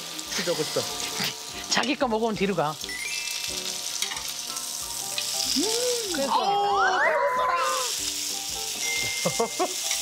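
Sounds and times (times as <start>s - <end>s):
meat sizzling on a grill pan: 0.0s - 10.0s.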